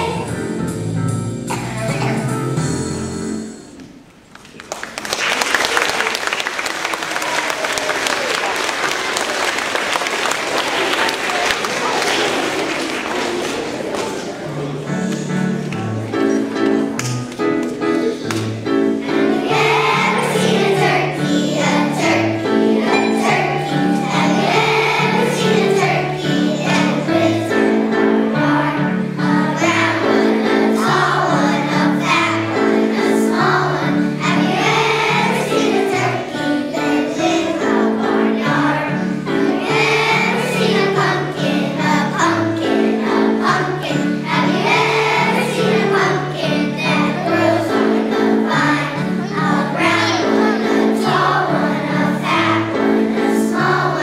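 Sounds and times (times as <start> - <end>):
children's choir singing: 0.0 - 0.6, 5.8 - 17.1, 17.7 - 54.0.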